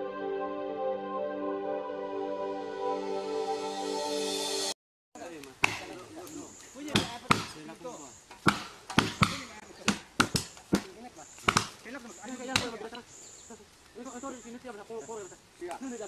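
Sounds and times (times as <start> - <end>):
blade chopping into wood: 5.6 - 6.0, 6.9 - 7.6, 8.3 - 11.8
men's voices: 9.1 - 16.0.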